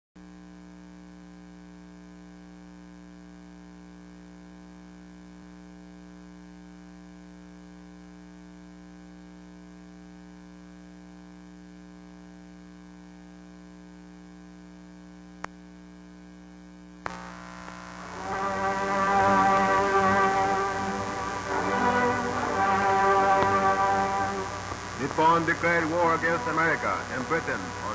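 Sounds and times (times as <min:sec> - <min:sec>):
film soundtrack hiss and crackle: 0:00.3 - 0:27.9
electrical hum: 0:17.0 - 0:27.9.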